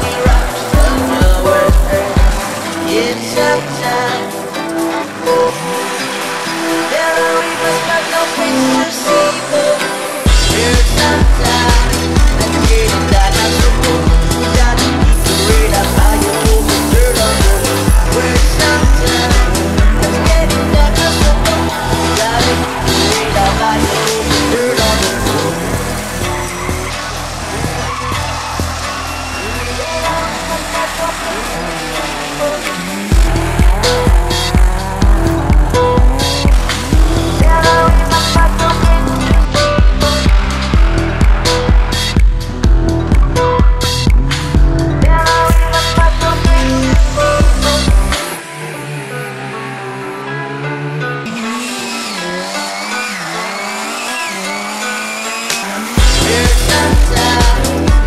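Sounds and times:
heavy bass beat: 0.0s - 3.1s, 10.3s - 48.3s, 56.0s - 58.0s
music track: 0.0s - 58.0s
rally car engines revving: 0.0s - 58.0s
tyre squeal: 20.2s - 38.8s, 51.2s - 56.9s.

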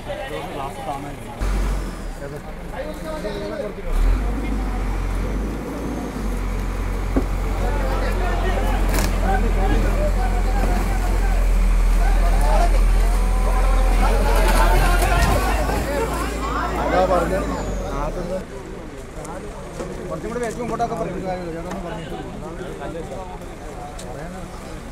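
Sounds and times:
diesel engine droning: 0.0s - 20.4s
crowd of voices calling out: 7.2s - 18.4s.

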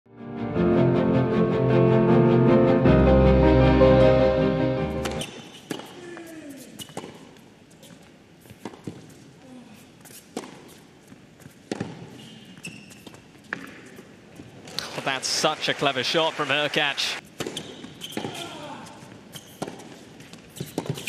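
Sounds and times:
title music: 0.1s - 5.2s
racket striking tennis ball: 5.0s - 6.0s, 11.7s - 12.2s, 19.5s - 20.0s
tennis ball bouncing: 8.5s - 9.0s, 10.3s - 10.8s, 11.6s - 12.2s, 13.1s - 13.9s, 19.4s - 21.0s.

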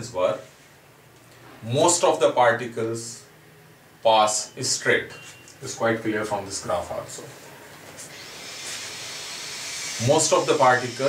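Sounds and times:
steady hiss: 8.0s - 11.0s.

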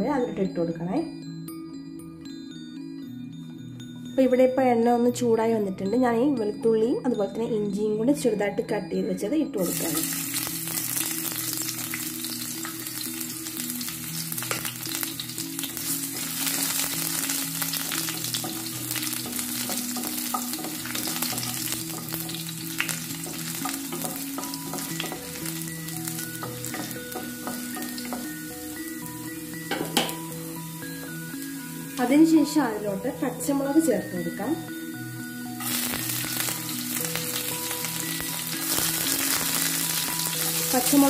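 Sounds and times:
food frying in hot oil: 9.6s - 30.8s, 35.6s - 41.0s.

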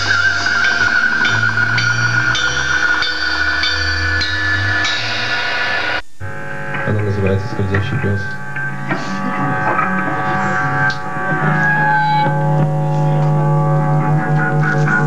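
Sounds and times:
cymbal strikes: 0.0s - 6.0s
low bass notes: 0.0s - 15.0s
wavering high note: 0.0s - 15.0s.

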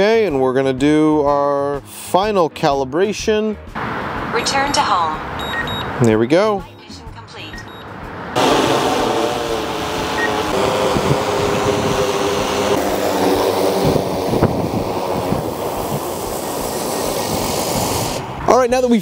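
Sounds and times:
drone propellers humming: 7.7s - 18.4s.

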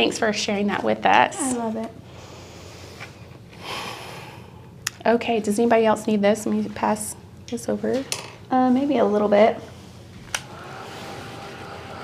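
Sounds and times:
heat tool blowing whir: 10.2s - 12.0s.

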